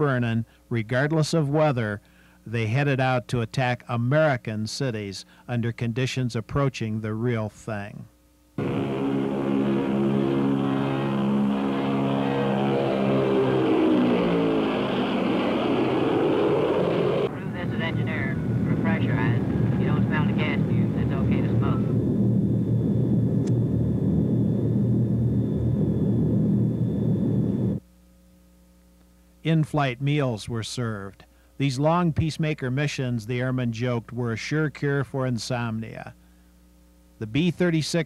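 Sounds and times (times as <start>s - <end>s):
man speaking: 0.0s - 8.1s, 29.5s - 36.2s, 37.2s - 38.0s
propeller aircraft passing by: 8.6s - 27.8s
engine drone inside aircraft: 8.6s - 28.9s.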